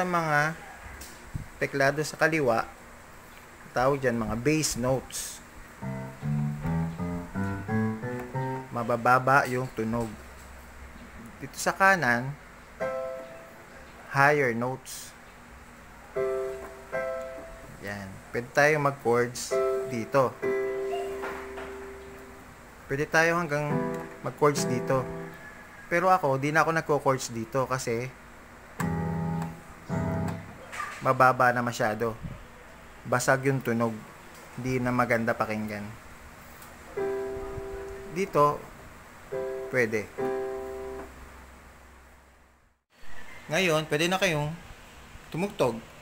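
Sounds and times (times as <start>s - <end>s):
electronic keyboard bass notes: 5.7s - 9.0s, 19.5s - 25.4s, 28.8s - 30.7s, 37.0s - 38.7s, 39.3s - 41.2s.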